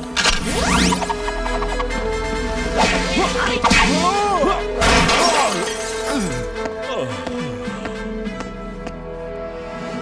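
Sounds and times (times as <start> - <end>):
action music: 0.0 - 10.0.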